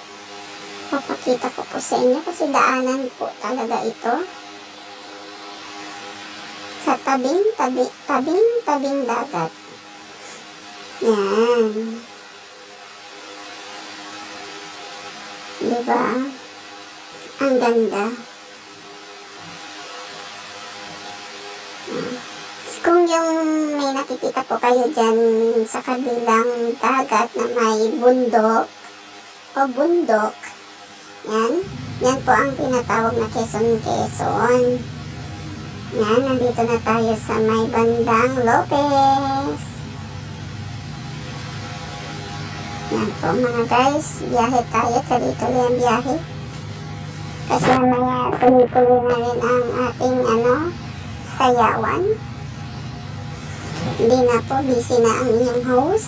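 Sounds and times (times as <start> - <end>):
road and engine noise inside vehicle: 31.6 - 55.9.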